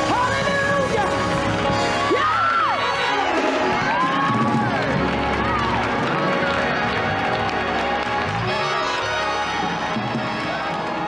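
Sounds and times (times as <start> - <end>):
congregation calling out and praising: 0.0 - 11.0
live gospel music: 0.0 - 11.0.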